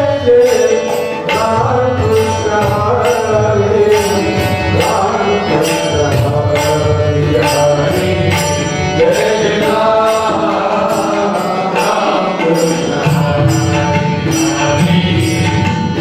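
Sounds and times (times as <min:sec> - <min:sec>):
harmonium: 0:00.0 - 0:16.0
men singing devotional song: 0:00.0 - 0:16.0
tabla: 0:00.0 - 0:16.0.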